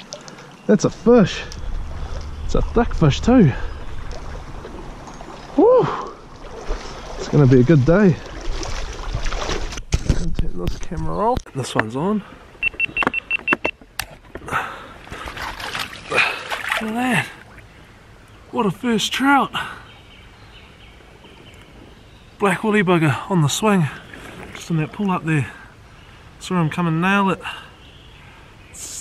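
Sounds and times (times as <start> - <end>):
stream running: 0.0 - 29.0.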